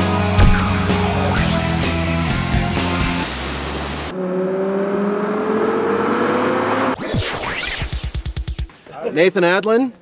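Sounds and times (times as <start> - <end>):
car engine accelerating: 0.4 - 7.0.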